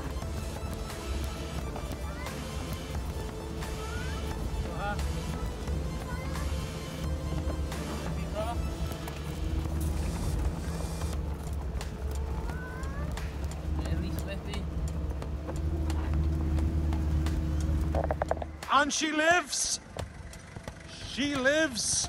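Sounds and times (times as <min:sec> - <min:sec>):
deep engine rumble: 0:00.0 - 0:18.7, 0:19.6 - 0:22.0
knocks and rattles from bumps: 0:11.2 - 0:18.7.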